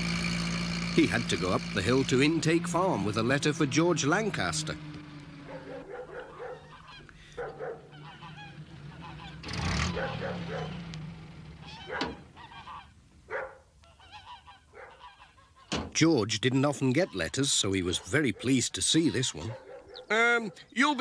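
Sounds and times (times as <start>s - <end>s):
geese honking: 1.1s - 10.9s, 11.5s - 21.0s.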